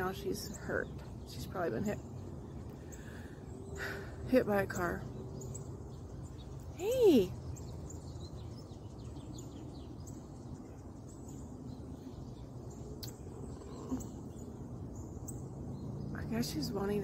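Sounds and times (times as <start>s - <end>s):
faint bird chirps: 0.0s - 16.6s.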